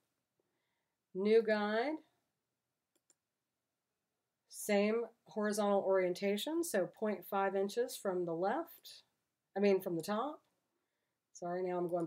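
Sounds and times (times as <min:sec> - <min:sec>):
computer mouse clicks: 0:02.9 - 0:03.2.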